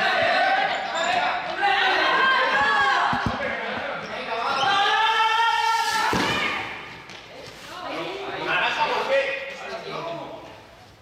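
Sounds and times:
balls bouncing on hall floor: 0.0 - 4.9.

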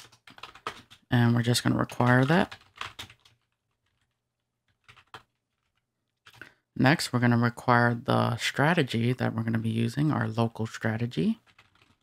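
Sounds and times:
computer keyboard typing: 0.0 - 6.6, 10.7 - 12.0.

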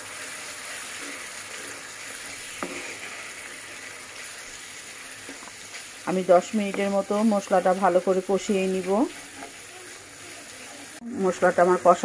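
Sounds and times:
spices sizzling in oil: 0.0 - 12.0
wooden spatula stirring: 0.2 - 11.0.

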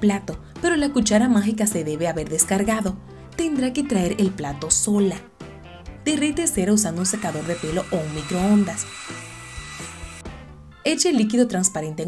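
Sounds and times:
background music: 0.0 - 12.0
hair dryer blowing: 6.8 - 10.6.

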